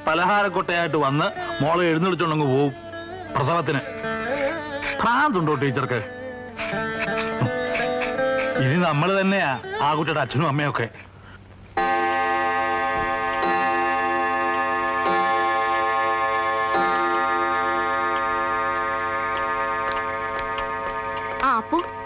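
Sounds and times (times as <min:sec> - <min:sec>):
clock striking: 0:11.8 - 0:22.0.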